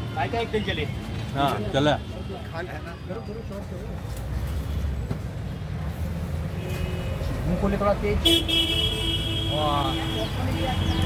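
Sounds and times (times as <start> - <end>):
street traffic rumble: 0.0 - 11.0
vehicle horn steady tone: 6.6 - 7.3, 8.2 - 11.0.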